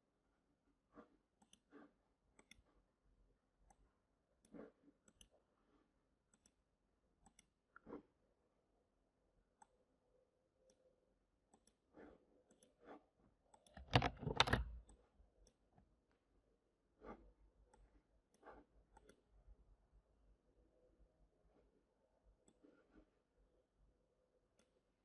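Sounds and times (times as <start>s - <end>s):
computer mouse clicks: 1.4s - 1.7s, 2.3s - 2.7s, 4.4s - 5.4s, 6.3s - 6.6s, 7.2s - 7.6s, 11.5s - 11.8s, 12.4s - 12.8s, 13.5s - 15.6s, 17.7s - 19.3s, 22.4s - 22.7s, 24.5s - 24.8s
keyboard keystrokes: 13.6s - 14.9s.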